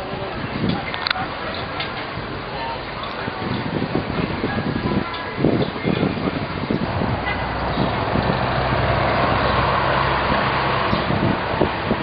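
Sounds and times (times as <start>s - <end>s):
bus engine humming: 0.0s - 12.0s
road noise: 0.0s - 12.0s.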